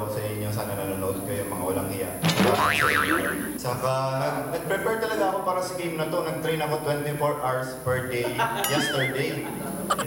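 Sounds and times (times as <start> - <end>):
sudden thud: 2.2 - 2.6
wobbling high boing: 2.3 - 3.7.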